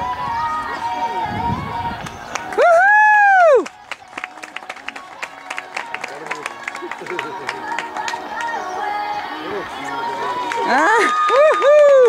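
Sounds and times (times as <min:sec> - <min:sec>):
quiet background music: 0:00.0 - 0:12.0.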